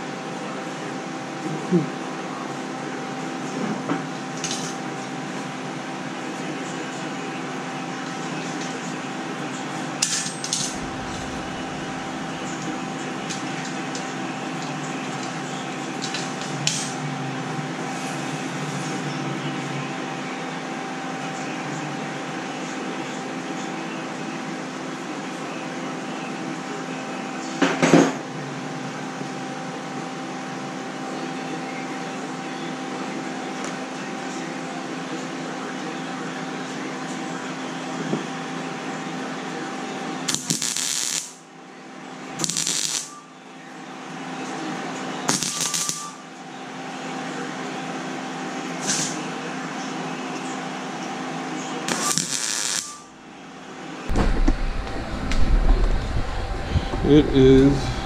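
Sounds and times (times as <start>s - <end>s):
steady electrical hum: 4.3s - 20.4s, 40.3s - 41.5s, 42.2s - 47.5s, 50.8s - 58.0s
welding gear clattering: 45.3s - 46.1s, 51.9s - 53.0s.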